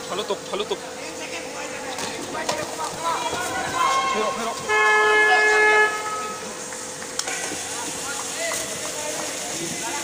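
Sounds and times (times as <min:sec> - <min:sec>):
crowd voices and shouting: 0:00.8 - 0:10.0
loud horn note: 0:04.6 - 0:06.5.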